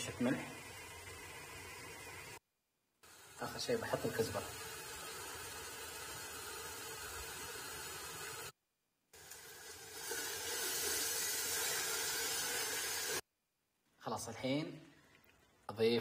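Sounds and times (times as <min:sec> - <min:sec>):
sauce sizzling in a metal pot: 0:03.0 - 0:08.5, 0:09.2 - 0:13.2.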